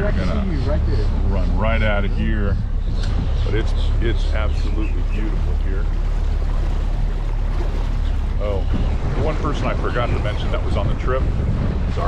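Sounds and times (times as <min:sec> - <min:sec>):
hull moving through water: 0:00.0 - 0:12.0
outboard motor running: 0:00.0 - 0:12.0.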